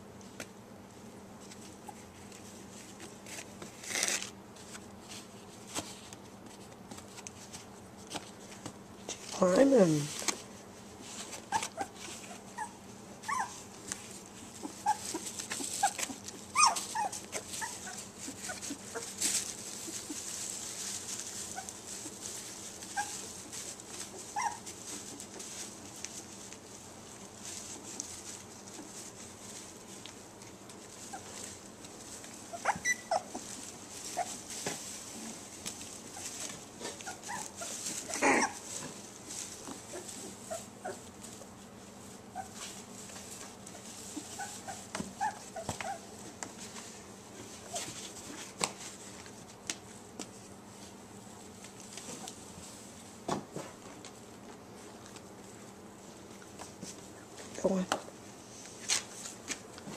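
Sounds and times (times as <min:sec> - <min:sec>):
puppies whimpering and squeaking: 0:11.4 - 0:13.8, 0:14.5 - 0:20.4, 0:21.1 - 0:22.2, 0:22.8 - 0:25.6, 0:31.0 - 0:31.6, 0:32.4 - 0:34.6, 0:36.1 - 0:38.8, 0:39.9 - 0:41.2, 0:42.3 - 0:42.7, 0:43.7 - 0:46.2
puppies whimpering: 0:11.5 - 0:13.6, 0:14.6 - 0:19.2, 0:24.2 - 0:24.7, 0:32.5 - 0:33.5, 0:37.0 - 0:38.6
puppy harsh cry: 0:15.8 - 0:18.6, 0:32.5 - 0:33.4, 0:37.1 - 0:38.7.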